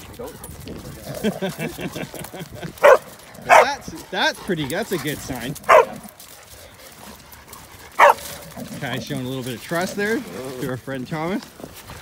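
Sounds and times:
person laughing: 0:01.1 - 0:02.8
dog yipping: 0:05.7 - 0:06.0, 0:08.0 - 0:08.3.

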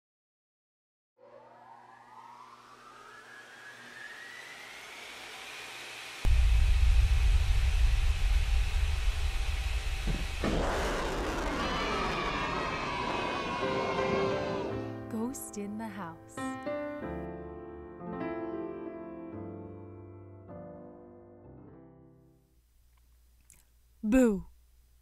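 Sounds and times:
whoosh with falling tones: 0:01.2 - 0:06.2, 0:08.0 - 0:14.8
rising electronic sweep: 0:01.2 - 0:14.8
deep boom with low rumble: 0:06.3 - 0:12.4.

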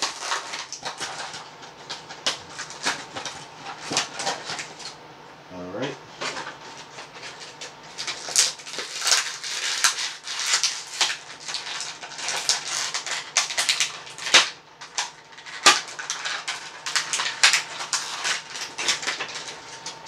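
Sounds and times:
plastic packaging crinkling: 0:00.0 - 0:05.0, 0:06.2 - 0:20.0.

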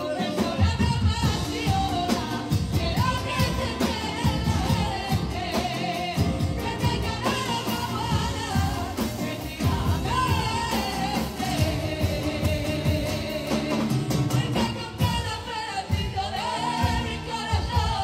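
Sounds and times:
acoustic guitar: 0:00.0 - 0:18.0
women singing together: 0:00.0 - 0:18.0.

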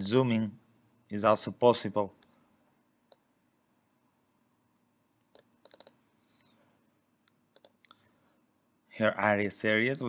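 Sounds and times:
faint computer mouse clicks: 0:03.1 - 0:03.3, 0:05.2 - 0:06.6, 0:07.2 - 0:08.0.

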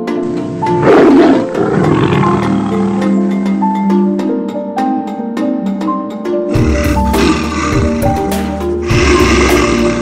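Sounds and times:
background music with tuned notes: 0:00.0 - 0:10.0
tiger roaring: 0:00.4 - 0:03.3.

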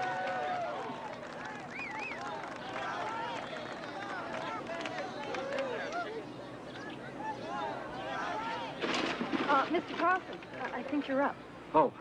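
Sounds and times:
people calling out: 0:02.2 - 0:08.8.

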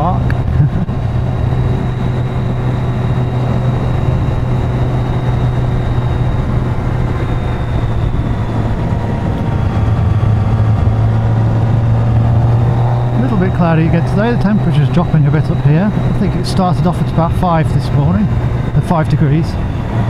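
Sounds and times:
motorcycle engine cruising: 0:00.0 - 0:20.0
rushing wind: 0:00.0 - 0:20.0.

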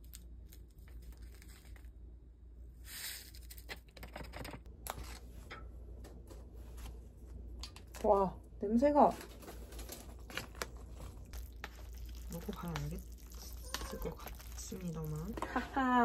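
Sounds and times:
powder rustling: 0:09.0 - 0:16.0
foil sachet tearing: 0:09.7 - 0:15.4.

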